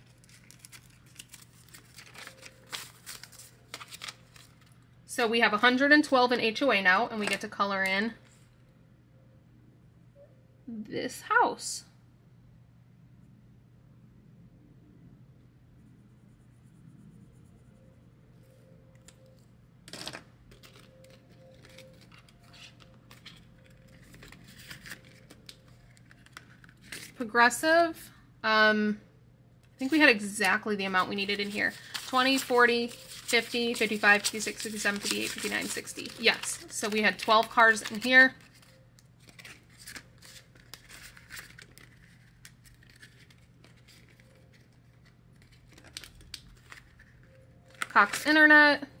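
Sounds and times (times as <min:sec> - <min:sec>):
paper banknotes rustling: 0:00.0 - 0:04.8, 0:20.6 - 0:27.2, 0:29.8 - 0:48.4
low room hum: 0:00.0 - 0:49.0.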